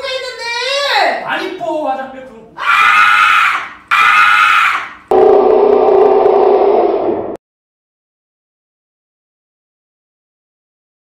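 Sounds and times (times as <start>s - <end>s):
woman screaming: 2.6s - 5.0s
low steady loud sound: 5.1s - 7.4s.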